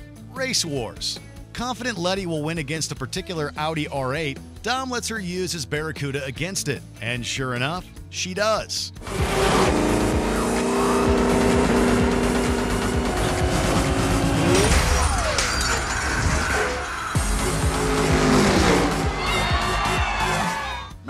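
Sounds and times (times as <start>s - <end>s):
music: 0.0s - 21.0s
car engine revving: 9.0s - 15.1s, 16.8s - 20.5s
tyres squealing and skidding: 13.8s - 21.0s.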